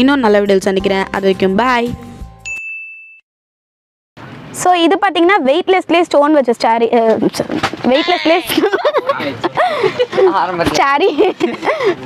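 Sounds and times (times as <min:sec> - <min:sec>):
bright ding: 0:02.4 - 0:03.2.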